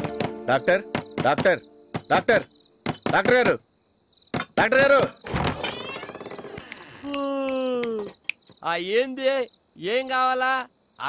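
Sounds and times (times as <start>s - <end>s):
person speaking: 0.0s - 2.5s
crickets chirring: 0.1s - 11.0s.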